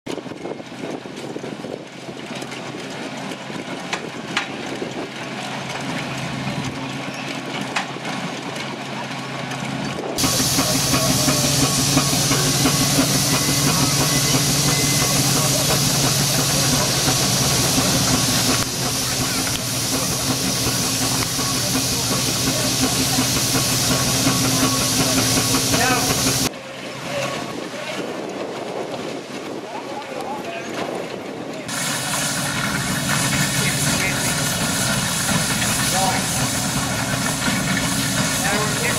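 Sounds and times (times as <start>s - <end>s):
threshing machine humming: 5.1s - 26.5s, 31.7s - 38.9s
loud steam hiss: 10.2s - 26.5s, 31.7s - 38.9s.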